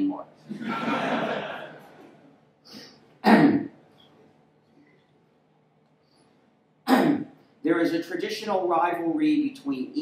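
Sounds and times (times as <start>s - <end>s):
man clearing his throat: 3.2s - 3.8s, 6.8s - 7.4s.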